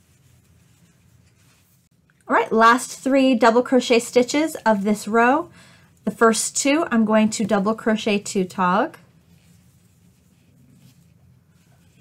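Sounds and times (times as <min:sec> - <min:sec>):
crochet hook and yarn rustling: 0:00.0 - 0:05.5, 0:06.1 - 0:12.0.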